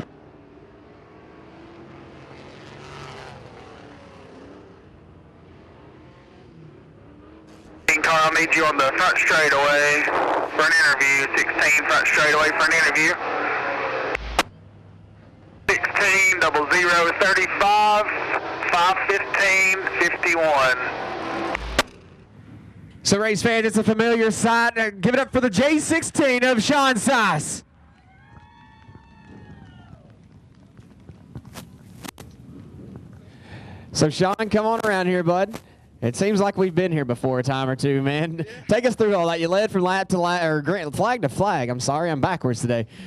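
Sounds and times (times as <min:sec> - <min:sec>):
race car engines at low speed: 0:00.0 - 0:43.0
spectator whooping: 0:27.9 - 0:30.1.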